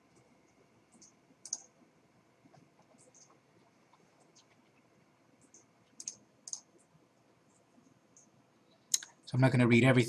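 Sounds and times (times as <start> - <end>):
computer mouse clicks: 0.1 - 1.8, 2.4 - 4.8, 5.4 - 6.9.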